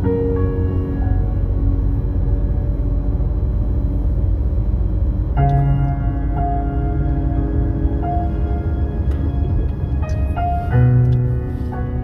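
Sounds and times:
car rumble: 0.0 - 12.0
slow ambient music: 0.0 - 12.0.

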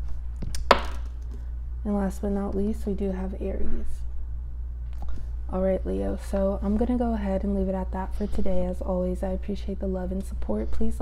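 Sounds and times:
die landing on table: 0.7 - 1.1.

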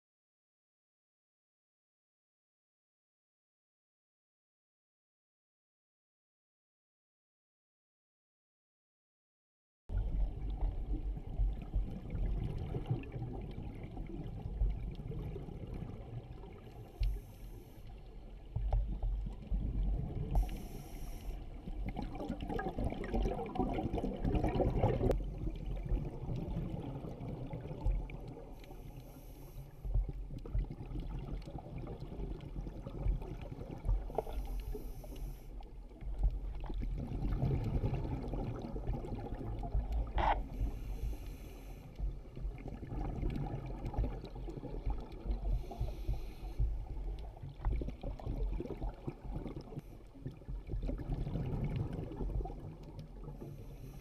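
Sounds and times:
muffled underwater exhaled bubbles: 9.9 - 54.0
regulator inhalation hiss: 20.4 - 21.4, 40.6 - 41.9.

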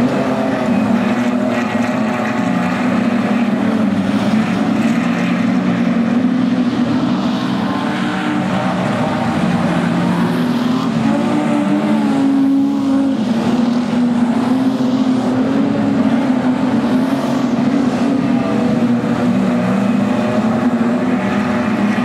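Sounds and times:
race car engines revving: 0.0 - 22.0.

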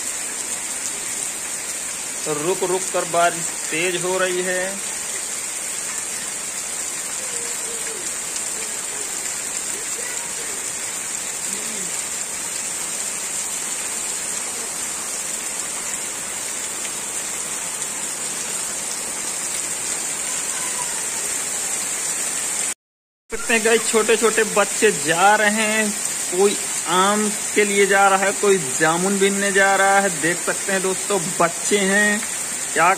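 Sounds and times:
heavy rain on wet ground: 0.0 - 32.9.

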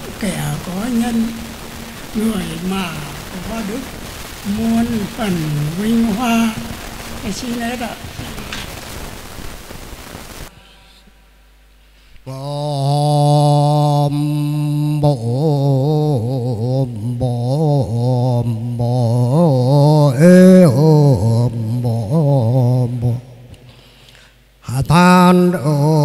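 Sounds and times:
man chanting through microphone: 2.1 - 8.6, 12.3 - 23.5, 24.6 - 26.0.

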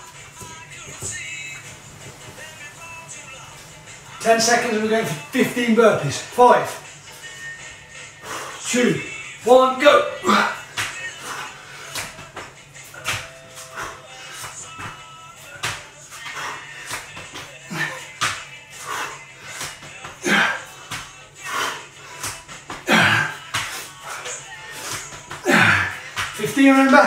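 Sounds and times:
hands and feet slapping tiled floor: 0.0 - 4.4, 10.2 - 27.0
faint music: 0.0 - 27.0.

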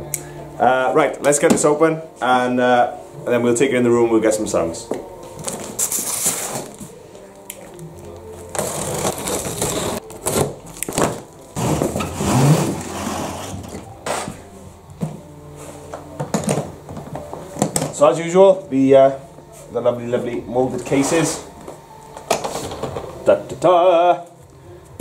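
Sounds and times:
cardboard scraping and rustling: 8.5 - 14.4.

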